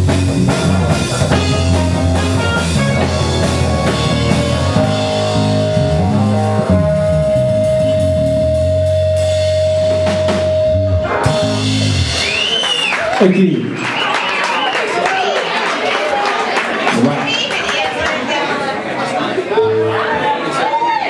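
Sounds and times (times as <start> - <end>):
electric guitar: 0.0 - 12.3
bass guitar: 0.0 - 12.6
drums: 0.0 - 14.5.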